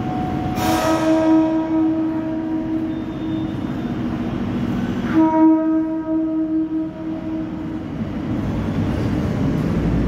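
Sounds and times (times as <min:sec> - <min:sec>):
train horn blast: 0:00.5 - 0:04.2, 0:05.0 - 0:07.9.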